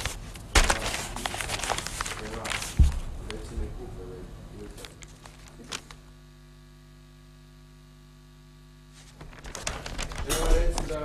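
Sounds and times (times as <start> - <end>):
newspaper rustling: 0.0 - 3.1, 4.8 - 6.0, 8.9 - 11.0
electrical mains hum: 0.0 - 11.0.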